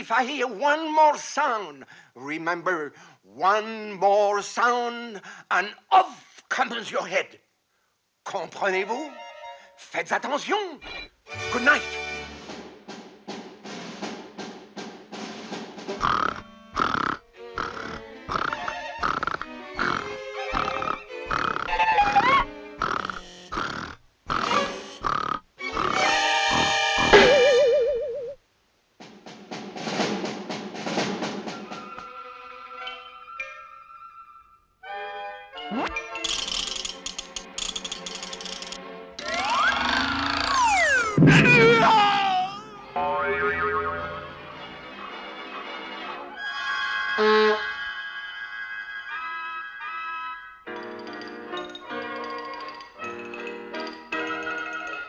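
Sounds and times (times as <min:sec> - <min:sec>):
orchestral music: 0:11.3 - 0:14.2, 0:41.2 - 0:50.8
cartoon grunting snores: 0:16.0 - 0:27.2, 0:39.3 - 0:41.0
sliding tones rising and falling: 0:39.2 - 0:41.9
cartoon cat yowling: 0:39.2 - 0:42.9
loud comic hit: 0:41.0 - 0:42.2.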